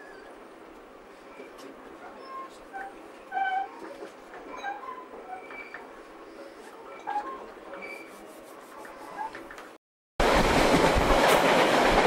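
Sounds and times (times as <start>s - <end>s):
train running noise: 0.0s - 12.0s
short high squeaks: 1.4s - 5.9s, 6.9s - 8.3s.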